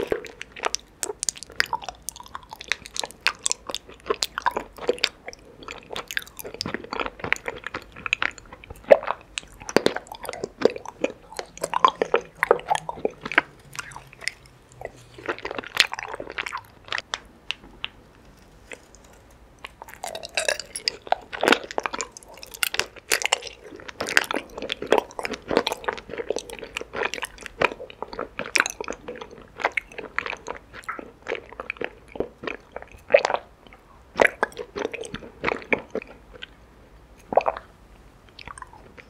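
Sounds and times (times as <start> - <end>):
close-miked chewing with crunches: 0.0 - 39.0.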